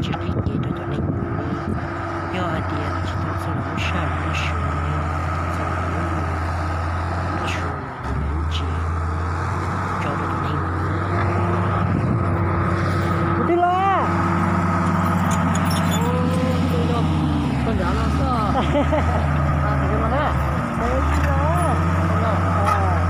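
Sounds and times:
diesel engines running: 0:00.0 - 0:23.0.

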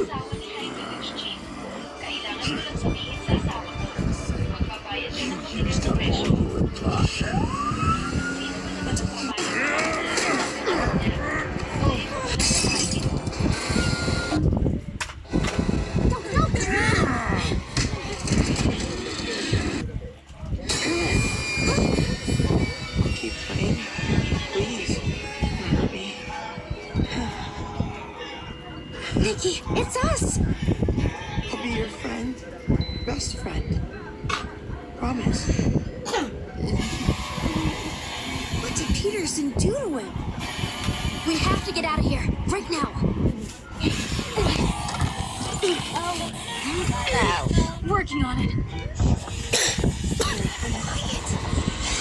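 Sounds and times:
background music: 0:00.0 - 0:14.4.

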